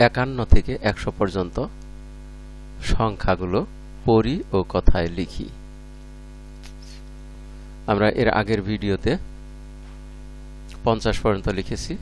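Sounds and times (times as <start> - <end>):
electrical mains hum: 0.0 - 12.0
person speaking: 2.8 - 5.6, 6.6 - 7.1.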